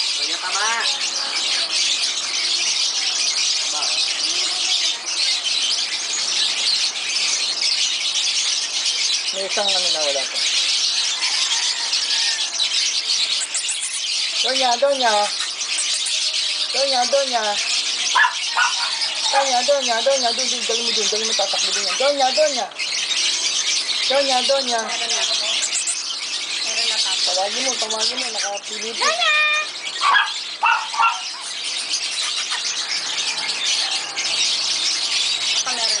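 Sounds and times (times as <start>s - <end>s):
small birds chirping: 0.0s - 36.0s.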